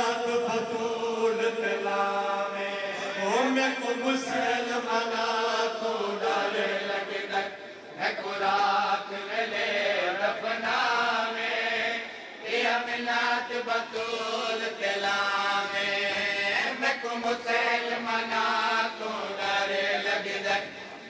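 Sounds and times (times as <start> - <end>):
amplified man chanting a lament: 0.0 - 21.0.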